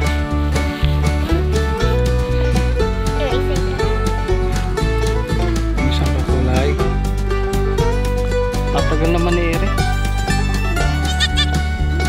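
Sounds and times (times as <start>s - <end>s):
country music: 0.0s - 12.0s.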